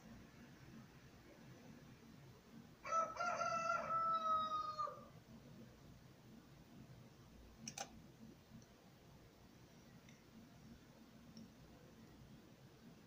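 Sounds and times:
rooster crowing: 2.8s - 5.1s
sharp click: 7.6s - 7.9s.

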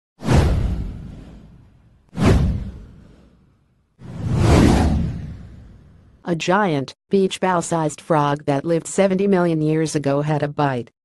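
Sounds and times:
deep whoosh effects: 0.2s - 6.2s.

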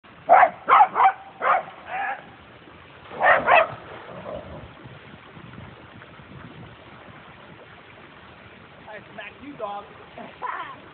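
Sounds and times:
dog barking: 0.3s - 2.2s, 3.2s - 3.8s.

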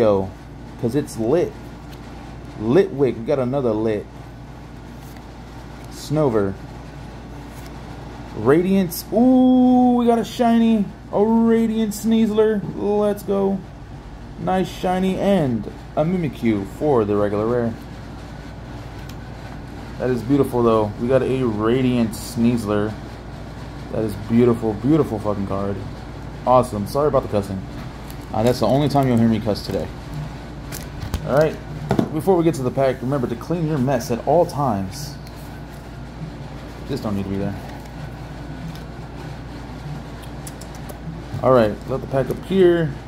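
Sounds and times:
low background hum and hiss: 0.0s - 43.0s.

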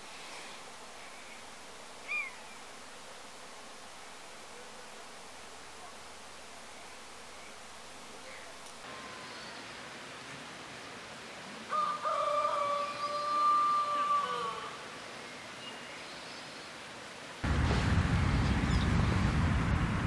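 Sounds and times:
faint hiss: 0.0s - 18.8s
rooster crowing: 11.7s - 14.8s
loud steady rushing noise: 17.4s - 20.0s.

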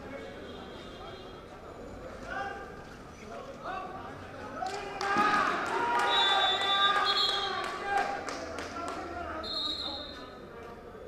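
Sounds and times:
players and spectators shouting: 4.8s - 8.2s
referee's whistle: 6.0s - 7.6s, 9.4s - 10.3s.

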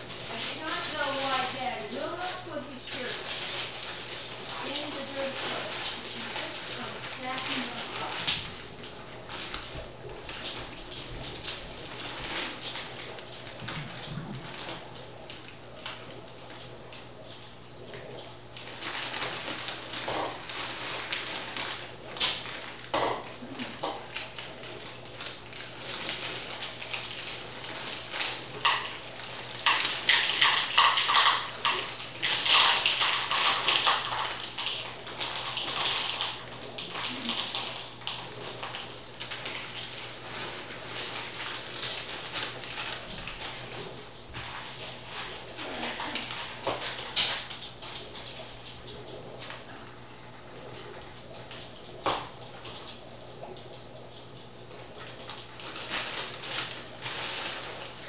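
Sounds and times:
plastic bag crinkling: 0.0s - 58.0s.

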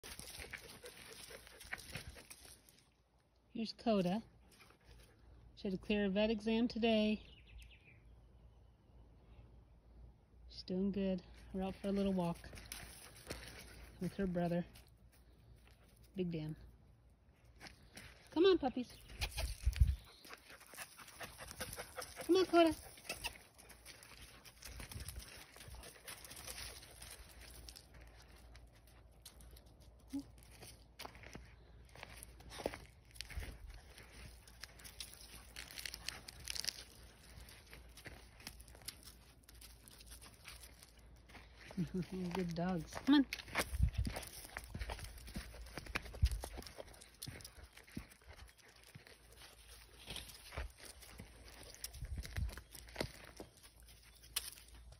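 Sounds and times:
footsteps on dry leaves: 0.0s - 2.9s, 11.6s - 15.8s, 19.0s - 29.6s, 30.4s - 54.9s
puppy panting: 0.1s - 2.4s, 19.3s - 27.0s.

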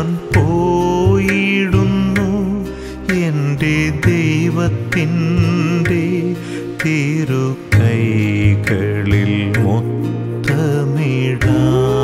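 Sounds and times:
instrumental accompaniment with bass: 0.0s - 12.0s
percussion strikes: 0.0s - 12.0s
person singing: 0.0s - 12.0s.

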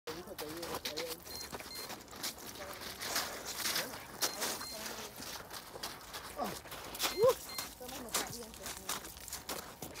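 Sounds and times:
sneakers crunching on ice: 0.1s - 10.0s.

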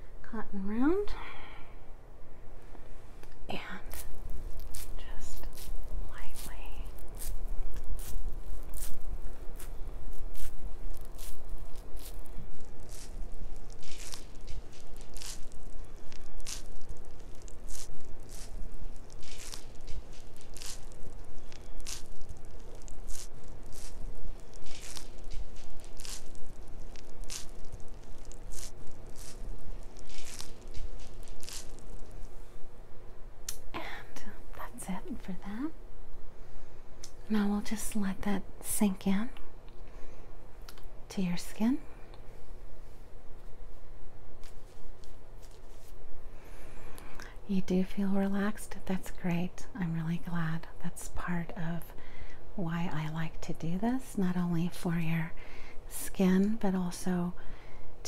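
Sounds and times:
cotton pad brushing on microphone: 3.8s - 32.4s.

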